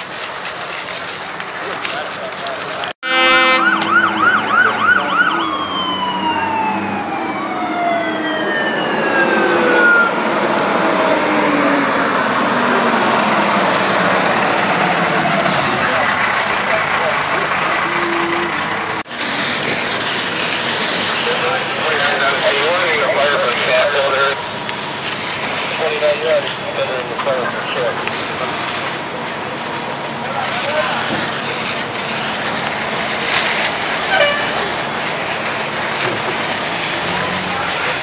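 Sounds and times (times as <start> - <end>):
truck engine: 0.0 - 38.0
fire engine horn: 3.0 - 11.2, 33.2 - 38.0
wavering yelp siren: 3.1 - 13.2
siren winding down: 3.4 - 13.2.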